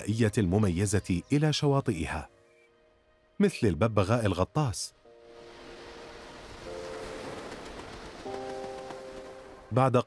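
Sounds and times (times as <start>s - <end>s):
background music of sustained chords: 0.0s - 10.0s.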